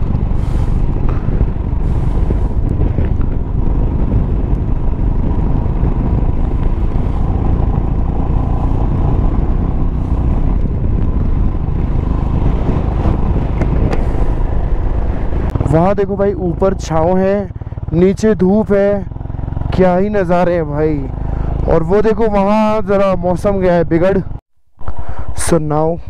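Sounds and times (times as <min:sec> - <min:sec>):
motorcycle engine running: 0:00.0 - 0:24.4
wind rumble on microphone: 0:00.0 - 0:26.0.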